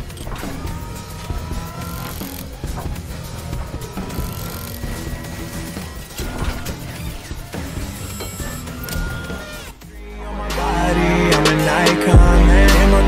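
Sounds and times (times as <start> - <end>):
rising motor whines: 0.0 - 9.8
toy car electric motor: 0.0 - 9.9
background music with beat: 5.2 - 13.0.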